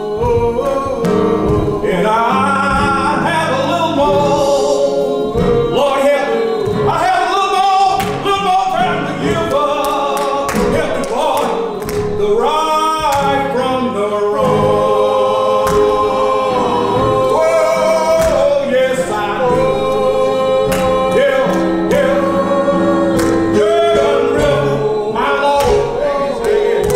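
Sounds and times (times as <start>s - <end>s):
man singing gospel: 0.0s - 26.9s
women singing: 0.0s - 26.9s
hand claps: 6.6s - 13.7s, 15.4s - 26.9s.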